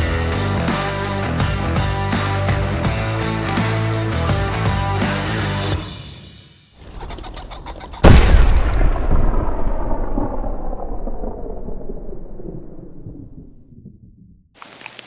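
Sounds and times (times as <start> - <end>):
loud ringing boom: 8.0 - 13.6.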